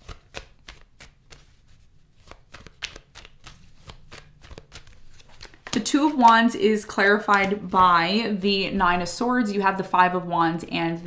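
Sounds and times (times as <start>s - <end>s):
cards being shuffled by hand: 0.0s - 8.2s.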